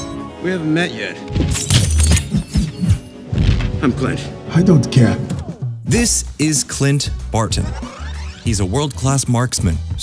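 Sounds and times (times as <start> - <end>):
action film music: 0.0 - 10.0.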